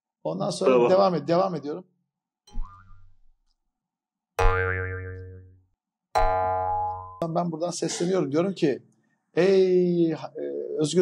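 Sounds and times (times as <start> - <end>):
cartoon boing sound effect: 4.4 - 5.5, 6.2 - 7.2.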